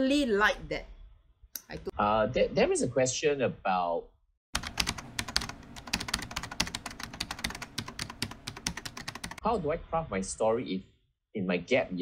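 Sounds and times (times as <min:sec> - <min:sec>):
rapid keyboard typing: 0:04.6 - 0:09.4.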